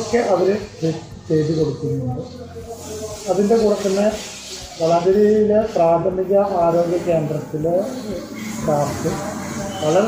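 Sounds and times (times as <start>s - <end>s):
man talking: 0.0s - 4.2s, 4.8s - 10.0s.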